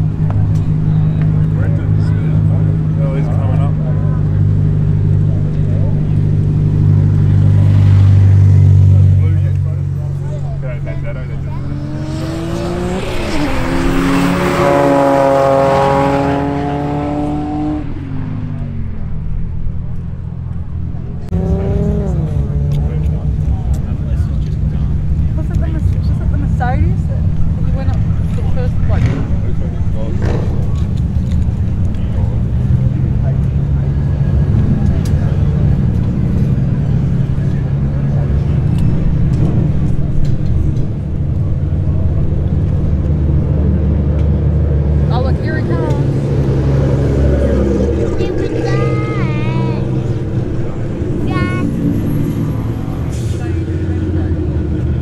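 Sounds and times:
race cars accelerating: 0:00.0 - 0:55.0.

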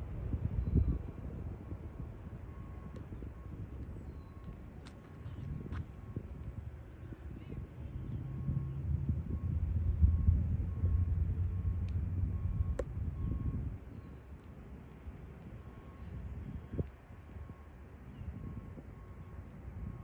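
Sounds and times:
traffic rumble: 0:00.0 - 0:20.0.

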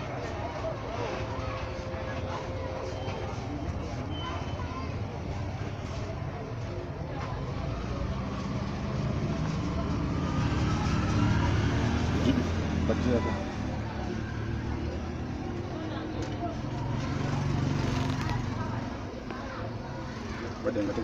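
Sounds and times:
road traffic engine rumble: 0:00.0 - 0:21.0.

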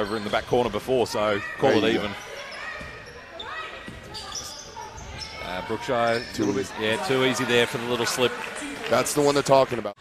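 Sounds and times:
sneakers squeaking on floor: 0:00.0 - 0:07.0.

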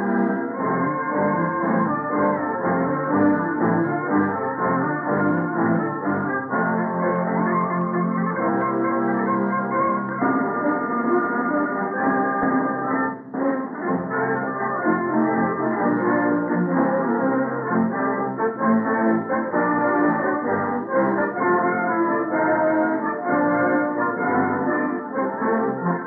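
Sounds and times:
brass: 0:00.0 - 0:26.0
orchestra playing overture: 0:00.0 - 0:26.0.

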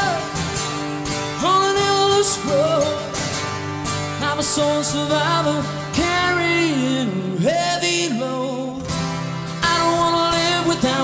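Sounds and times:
man singing lead vocal: 0:00.0 - 0:11.0.

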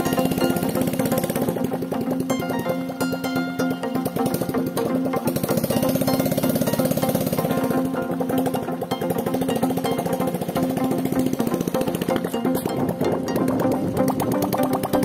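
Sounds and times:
background music: 0:00.0 - 0:15.0
motorcycle engine running under load: 0:00.0 - 0:15.0.

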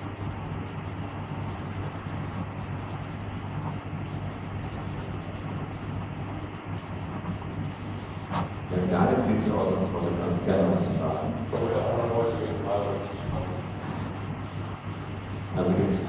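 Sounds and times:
low hum: 0:00.0 - 0:16.0.

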